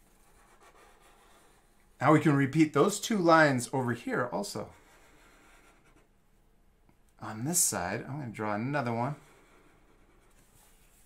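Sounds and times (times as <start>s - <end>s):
marker scratching on paper: 0.0s - 1.9s, 4.6s - 6.1s, 8.9s - 11.0s.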